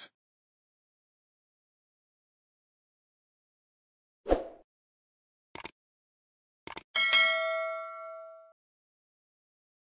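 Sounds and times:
notification bell ding: 7.0 - 8.6.

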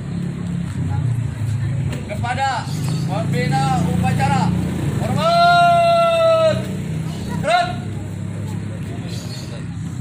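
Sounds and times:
low engine rumble: 0.0 - 10.0.

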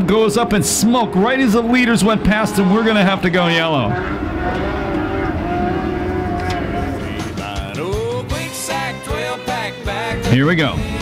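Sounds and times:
race car engines droning: 0.0 - 9.2.

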